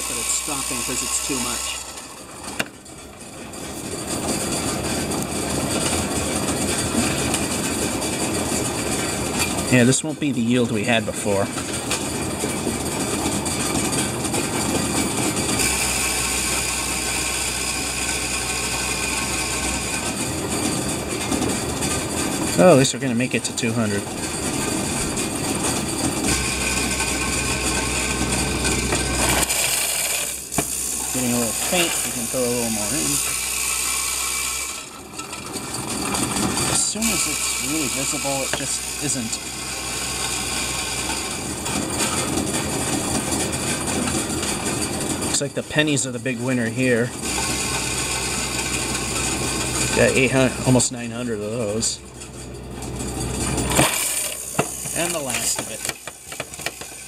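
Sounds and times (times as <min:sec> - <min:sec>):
machine motor hum: 0:11.6 - 0:45.4
coins clattering through machine: 0:26.9 - 0:33.8, 0:36.4 - 0:39.4, 0:53.7 - 0:57.0.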